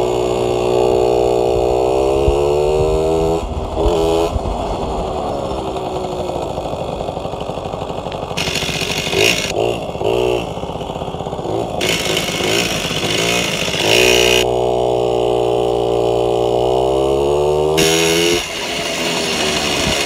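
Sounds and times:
moped engine running: 0.0s - 20.0s.

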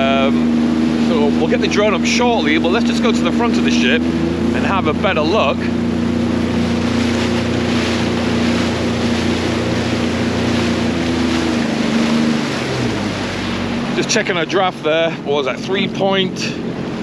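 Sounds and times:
water rushing: 0.0s - 17.0s
watercraft engine running: 0.0s - 17.0s.

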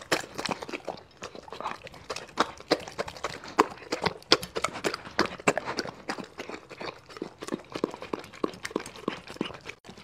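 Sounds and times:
dog chewing wetly: 0.0s - 10.0s
dog lapping juice from plate: 0.0s - 10.0s.

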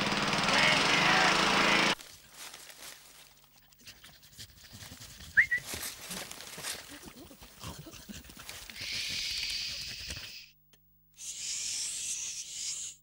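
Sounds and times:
cartoon dogs making noises: 6.7s - 10.6s.

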